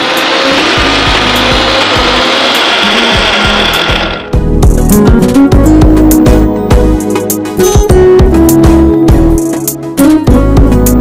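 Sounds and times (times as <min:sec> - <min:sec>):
mixer grinder running: 0:00.0 - 0:04.5.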